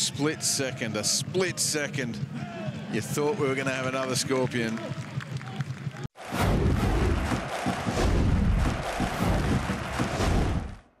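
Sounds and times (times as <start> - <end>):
stadium crowd noise: 0.0 - 10.9
crowd roar: 6.1 - 10.9
music with heavy low beats: 6.4 - 10.9.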